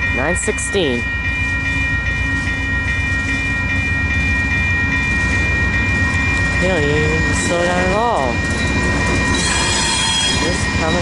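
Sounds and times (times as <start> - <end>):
crossing warning bell ringing: 0.0 - 11.0
train rumbling: 0.0 - 11.0.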